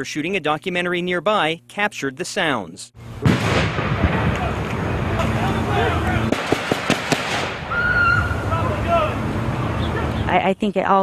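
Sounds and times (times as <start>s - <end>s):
rifle shots: 3.2s - 4.6s, 6.3s - 7.7s
high held scream: 7.6s - 9.2s.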